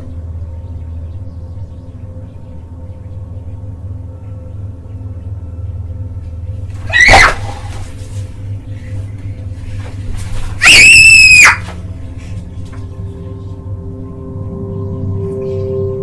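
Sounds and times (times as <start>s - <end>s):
steady low hum: 0.0s - 16.0s
girl screaming: 6.8s - 7.8s, 10.6s - 11.8s.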